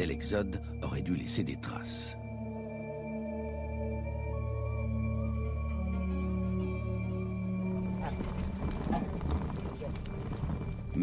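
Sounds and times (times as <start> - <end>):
hooves on hard ground: 7.7 - 11.0.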